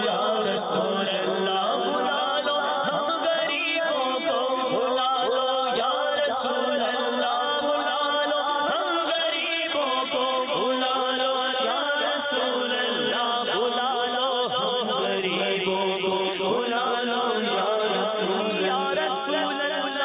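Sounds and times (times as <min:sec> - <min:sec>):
man singing ornamented melody: 0:00.0 - 0:20.0.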